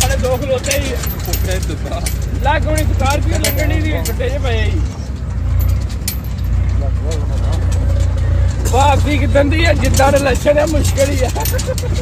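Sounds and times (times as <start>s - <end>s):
faint voices talking: 0.0s - 12.0s
vehicle rumble from inside: 0.0s - 12.0s.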